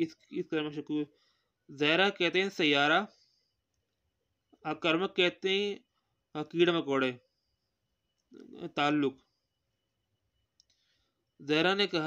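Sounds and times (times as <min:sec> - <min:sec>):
person speaking: 0:00.0 - 0:03.4, 0:04.5 - 0:07.4, 0:08.2 - 0:09.4.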